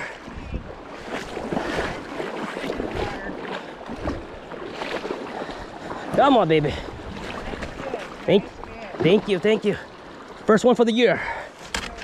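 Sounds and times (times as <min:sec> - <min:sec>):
wind on microphone: 0:00.0 - 0:04.3
river water splashing: 0:00.0 - 0:12.0.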